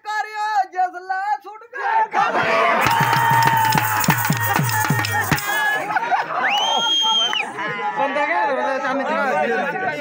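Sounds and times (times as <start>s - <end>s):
loud folk music: 2.6s - 6.0s
quick drum beats: 2.8s - 5.8s.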